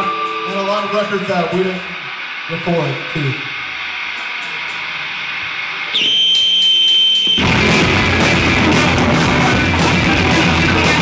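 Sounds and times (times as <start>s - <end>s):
guitar amplifier feedback squeal: 0.0s - 4.8s, 5.5s - 9.9s
amp noise: 0.0s - 11.0s
fast punk rock song: 7.3s - 11.0s.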